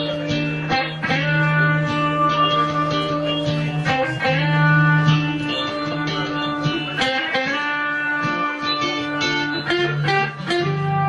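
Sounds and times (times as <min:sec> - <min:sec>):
plucked guitar melody: 0:00.0 - 0:11.0.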